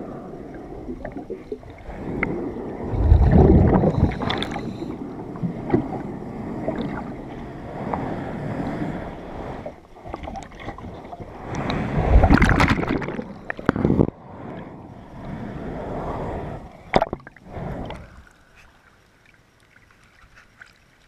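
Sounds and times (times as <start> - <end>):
underwater breath bubbles rumbling: 0.0 - 18.3
underwater clicks and rubbing: 0.6 - 7.2, 9.6 - 14.7, 16.9 - 21.0.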